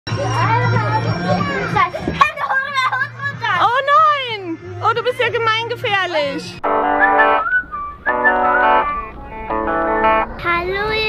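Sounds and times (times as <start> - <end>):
children calling out and shrieking: 0.1 - 5.0.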